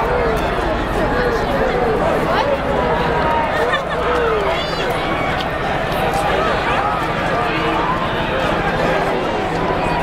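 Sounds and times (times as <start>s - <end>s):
crowd shouting and talking: 0.0s - 10.0s.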